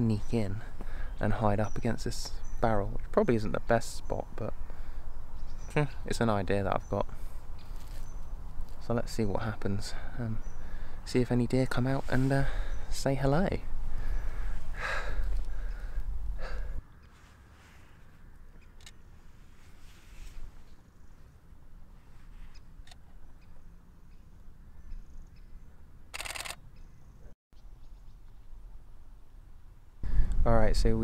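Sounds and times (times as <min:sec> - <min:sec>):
camera shutter burst: 0:26.1 - 0:26.6.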